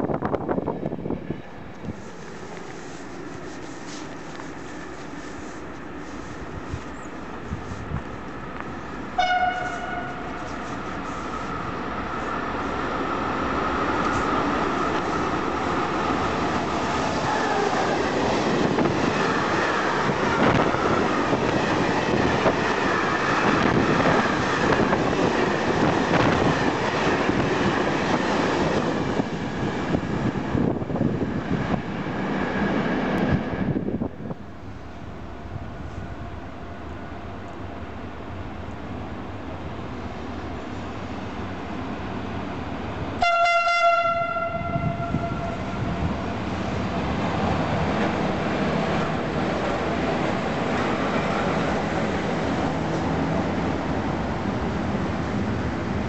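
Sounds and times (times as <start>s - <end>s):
train horn blast: 9.2s - 10.6s, 43.2s - 45.9s.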